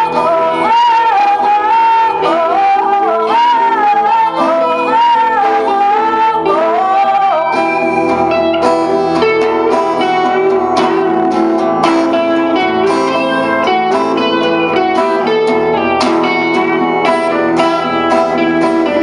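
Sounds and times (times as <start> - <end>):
electric guitar: 0.0 - 19.0
strummed acoustic guitar: 0.0 - 19.0
woman singing: 0.0 - 19.0.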